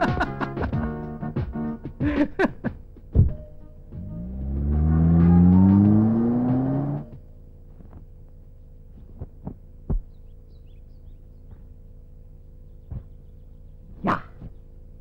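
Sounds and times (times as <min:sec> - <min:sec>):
car engine revving up: 0:04.0 - 0:07.2.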